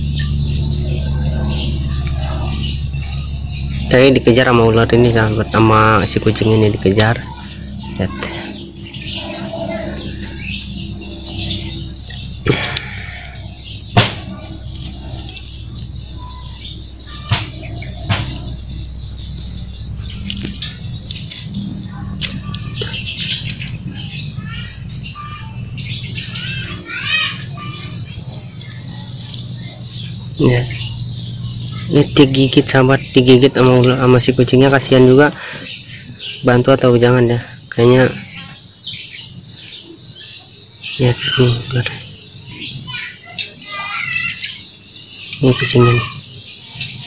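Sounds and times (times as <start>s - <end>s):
faint bird chirps: 0.0s - 47.0s
sharp knocks: 13.9s - 14.4s, 17.3s - 18.5s.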